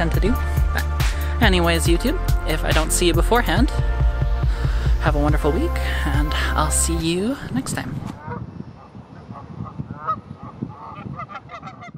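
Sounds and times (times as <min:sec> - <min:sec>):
geese honking: 0:09.2 - 0:11.9.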